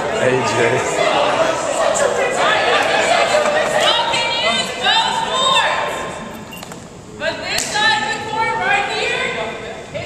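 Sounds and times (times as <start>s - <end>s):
indistinct talking of group: 0.0s - 10.0s.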